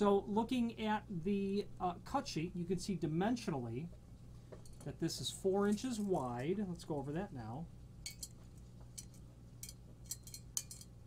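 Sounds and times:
low steady hum: 0:00.0 - 0:11.0
metallic ticks and clicks: 0:08.0 - 0:11.0.

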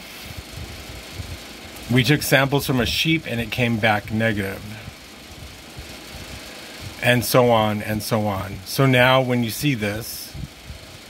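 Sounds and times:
even hiss: 0:00.0 - 0:11.0
soft low thumps: 0:00.2 - 0:01.9, 0:04.8 - 0:07.1
faint low rumble: 0:00.2 - 0:11.0.

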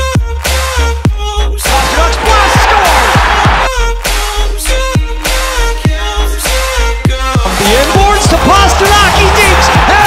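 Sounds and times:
loud electronic music: 0:00.0 - 0:10.0.

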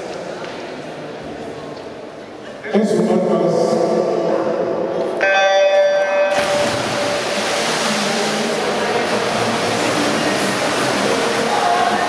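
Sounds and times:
swimmers splashing: 0:06.3 - 0:12.0.

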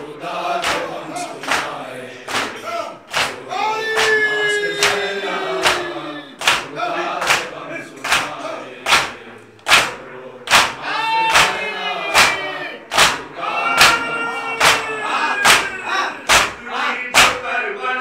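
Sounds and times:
group chanting a lament: 0:00.0 - 0:18.0
hands beating on chests: 0:14.6 - 0:16.6.

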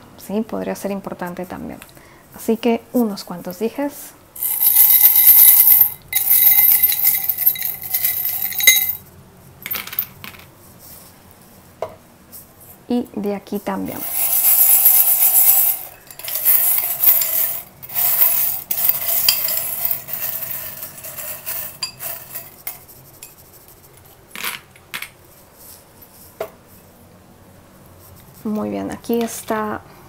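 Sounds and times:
metal charms clinking in glass bowl: 0:04.4 - 0:09.0, 0:14.0 - 0:22.8.

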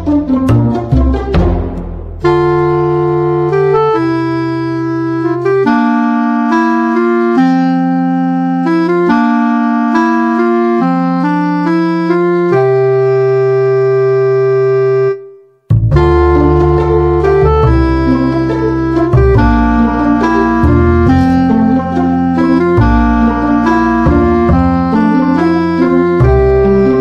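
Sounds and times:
held keyboard chords: 0:00.0 - 0:27.0.

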